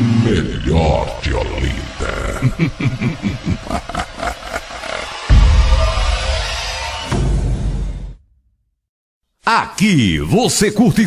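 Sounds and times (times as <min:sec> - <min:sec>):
electronically deepened voice: 0:00.0 - 0:04.5.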